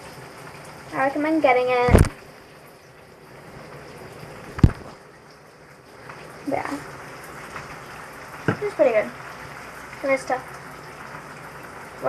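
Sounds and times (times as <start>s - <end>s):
shower running: 0.0s - 12.0s
knock: 8.5s - 8.7s.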